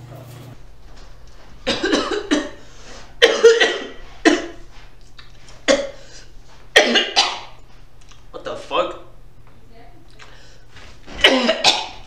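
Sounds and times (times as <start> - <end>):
man coughing: 1.6 - 2.6, 3.2 - 4.6, 5.7 - 6.0, 6.8 - 7.5, 11.1 - 12.0.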